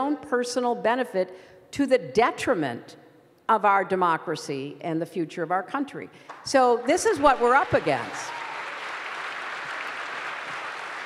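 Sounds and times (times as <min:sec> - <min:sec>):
audience applauding: 0:07.2 - 0:11.0.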